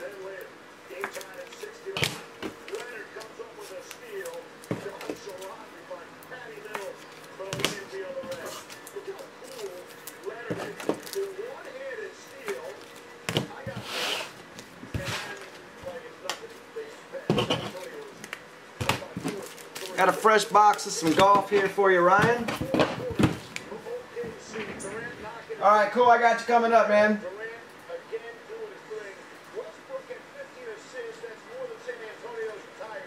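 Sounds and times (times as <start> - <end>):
cards rustling: 0.0 - 25.1.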